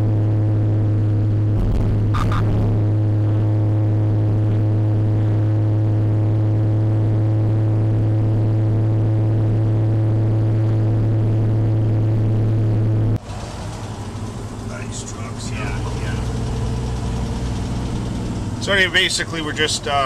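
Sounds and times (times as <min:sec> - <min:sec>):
car cabin engine and road drone: 0:00.0 - 0:20.0.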